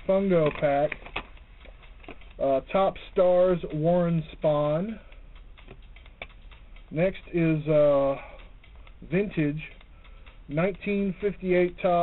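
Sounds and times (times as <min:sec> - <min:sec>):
cardboard cards clicking and tapping: 0:00.1 - 0:02.4, 0:05.6 - 0:06.6.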